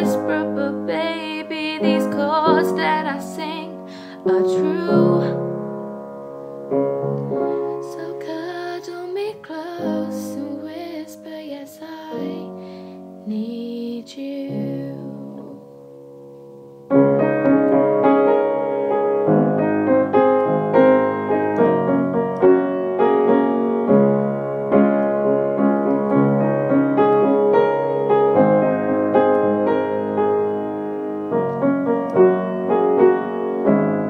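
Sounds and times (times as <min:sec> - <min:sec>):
piano playing slow ballad: 0:00.0 - 0:34.0.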